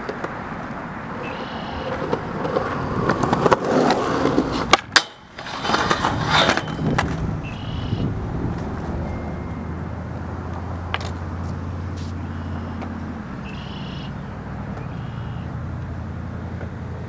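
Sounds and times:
skateboard wheels rolling on concrete: 0.0s - 17.0s
skateboard scraping a steel rail: 1.1s - 7.7s
skateboard pop cracks: 4.6s - 7.2s.

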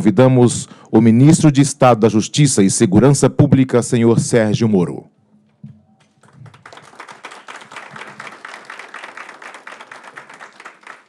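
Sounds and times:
audience applauding: 6.0s - 11.0s.

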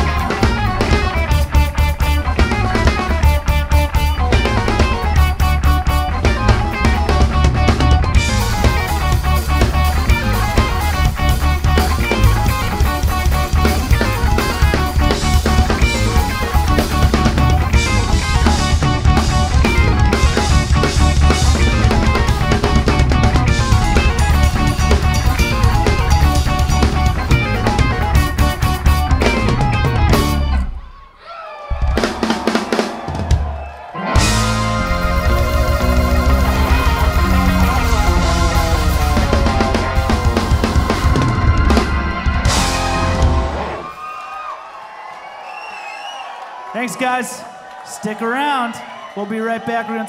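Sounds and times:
rock band playing loud: 0.0s - 44.1s.

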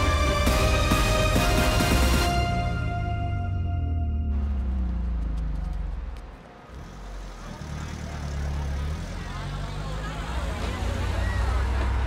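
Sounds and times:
music cue: 0.0s - 5.2s
car engine rumbling: 2.7s - 12.0s.

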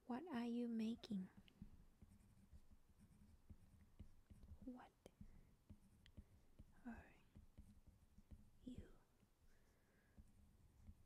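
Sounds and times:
soft whispered word: 4.6s - 5.3s, 6.7s - 7.4s, 8.6s - 10.3s.

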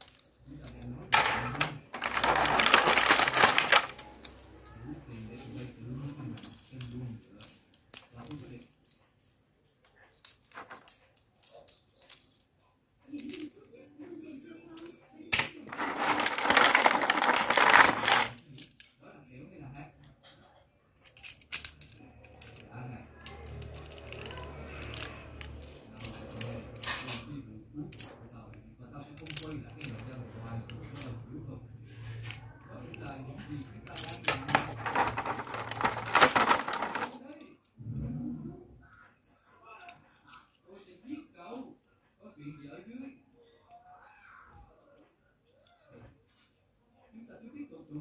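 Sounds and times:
plastic packaging crackling: 1.8s - 4.1s, 15.7s - 18.3s, 34.3s - 37.1s.

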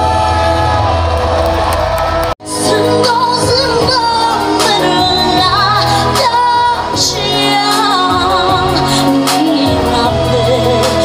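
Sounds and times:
live stage music: 0.0s - 11.0s.

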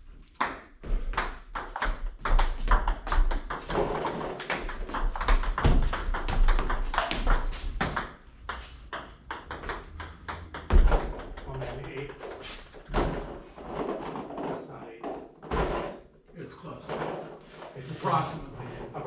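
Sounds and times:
table tennis balls struck and bouncing: 0.2s - 16.0s.

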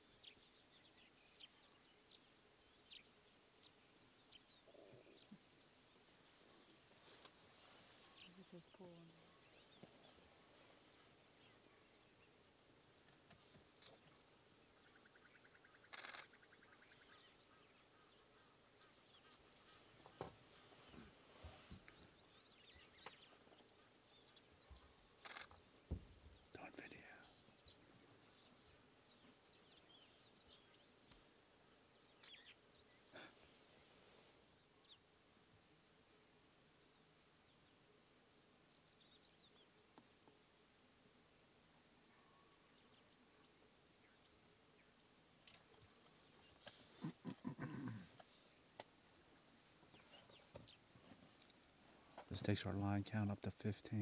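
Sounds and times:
faint bird calls: 13.2s - 35.3s, 45.5s - 49.3s.

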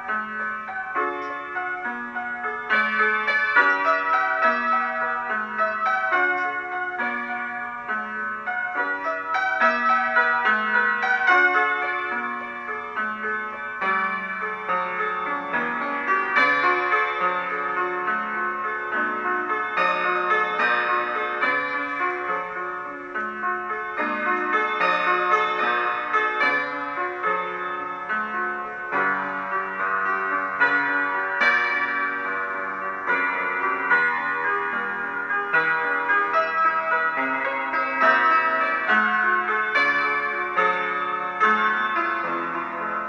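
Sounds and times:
solo piano piece: 0.0s - 43.0s.

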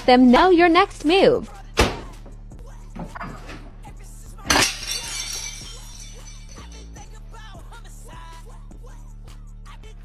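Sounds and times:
plate smashing on tile floor: 4.5s - 7.0s
pieces scattering and clinking: 4.5s - 7.1s.

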